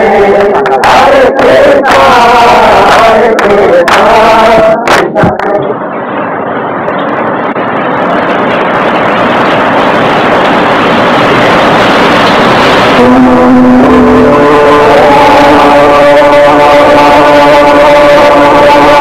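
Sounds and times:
group of voices chanting: 0.0s - 5.7s
loud even rushing noise: 0.0s - 19.0s.

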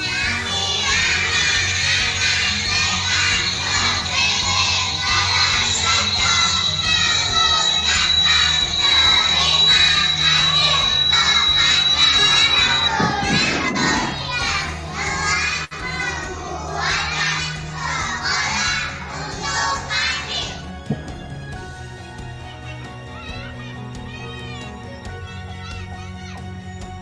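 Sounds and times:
children speaking in unison: 0.0s - 20.6s.

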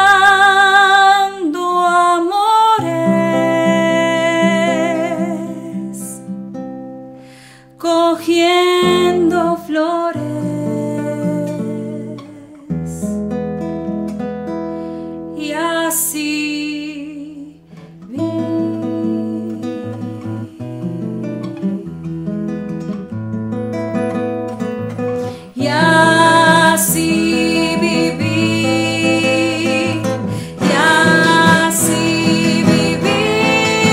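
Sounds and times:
woman singing: 0.0s - 6.3s, 7.7s - 13.2s, 15.3s - 23.0s, 25.2s - 33.9s
nylon-string guitar playing: 2.8s - 7.3s, 8.6s - 15.3s, 17.6s - 33.9s.

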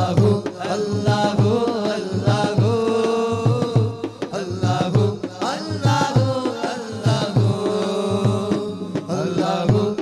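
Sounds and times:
low percussion beat: 0.0s - 10.0s
man singing into a microphone: 0.0s - 10.0s.

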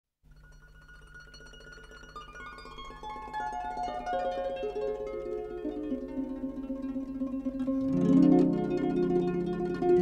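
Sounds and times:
harp plucked notes: 0.8s - 10.0s.

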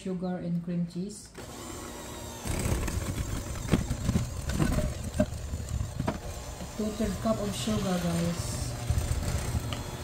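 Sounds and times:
electric hand mixer running: 1.3s - 10.0s.

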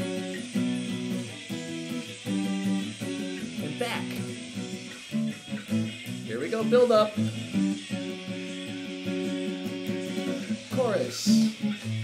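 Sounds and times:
acoustic guitar strummed hard: 0.0s - 12.0s.

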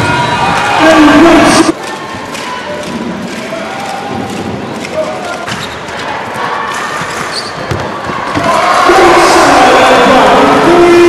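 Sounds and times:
ball bouncing on court floor: 6.4s - 8.5s.

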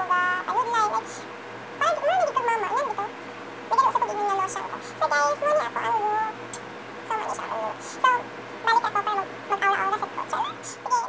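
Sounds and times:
woman vocalizing high-pitched: 7.1s - 11.0s.

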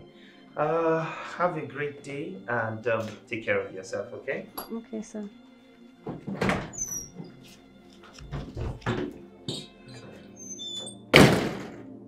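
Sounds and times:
soft background music: 0.0s - 12.0s
metal door shutting: 6.2s - 7.3s, 8.2s - 11.8s.

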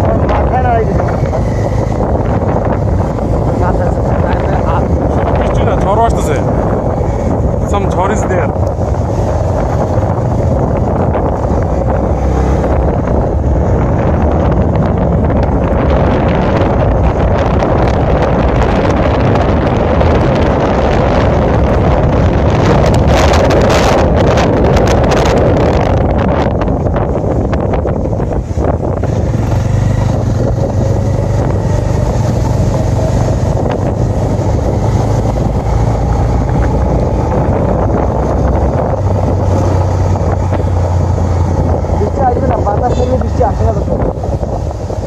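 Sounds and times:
low motor hum: 0.0s - 45.0s
wind buffeting microphone: 0.0s - 45.0s.

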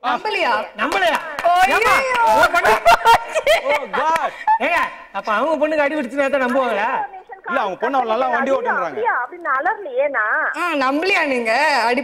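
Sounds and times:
sharp claps: 0.8s - 2.4s
people laughing: 2.0s - 5.1s.

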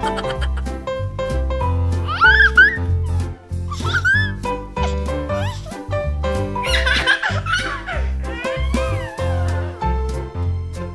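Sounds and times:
background music with bass line: 0.0s - 10.9s.

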